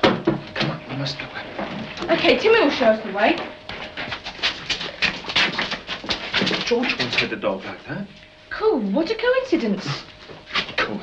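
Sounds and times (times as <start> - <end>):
dog panting: 3.7 - 7.4.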